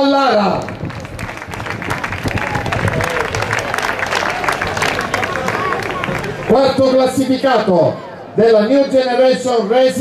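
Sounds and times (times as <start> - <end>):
crowd clapping: 0.4 - 7.2.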